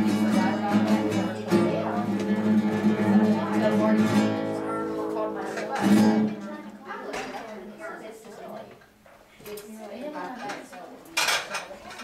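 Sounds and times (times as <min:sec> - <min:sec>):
low voices talking: 0:00.0 - 0:12.0
dishes and cutlery clattering: 0:05.3 - 0:06.4, 0:10.2 - 0:12.0.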